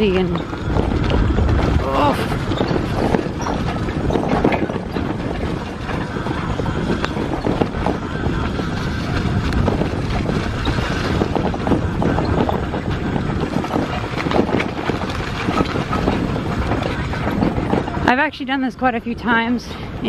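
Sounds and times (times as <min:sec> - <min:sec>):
bicycle rattling over rough grass: 0:00.0 - 0:18.4
wind buffeting microphone: 0:00.0 - 0:20.0.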